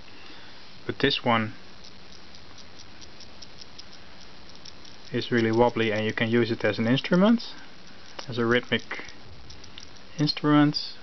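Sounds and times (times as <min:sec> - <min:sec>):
steady hiss: 0:00.0 - 0:11.0
magnet balls clicking: 0:01.8 - 0:07.2, 0:07.8 - 0:10.4.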